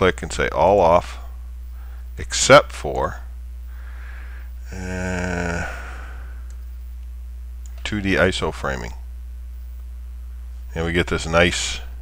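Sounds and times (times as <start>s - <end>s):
low electrical hum: 0.0s - 12.0s
man speaking: 2.2s - 3.3s, 4.7s - 6.2s, 7.8s - 9.0s, 10.7s - 12.0s.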